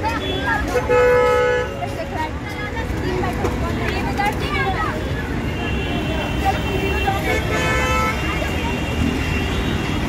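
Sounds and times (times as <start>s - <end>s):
road traffic rumble: 0.0s - 10.0s
vehicle horn honking: 5.6s - 8.5s.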